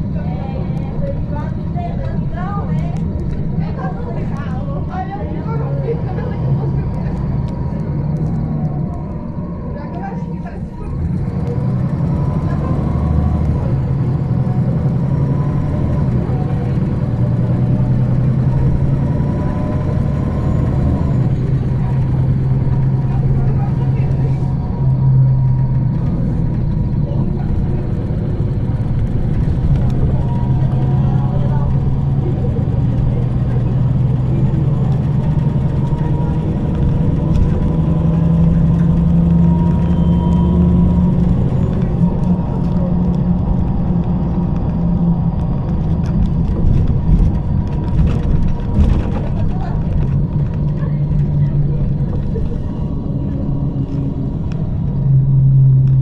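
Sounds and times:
bus engine running: 0.0s - 56.0s.

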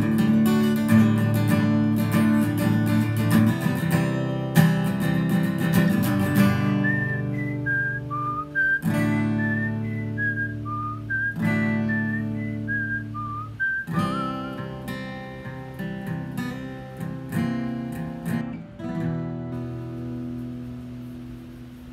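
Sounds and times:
strummed acoustic guitar chords: 0.0s - 21.9s
whistled melody: 6.5s - 14.8s.

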